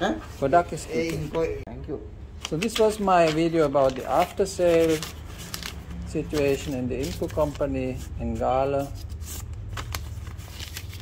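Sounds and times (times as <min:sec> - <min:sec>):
paper receipt crackling: 0:02.4 - 0:11.0.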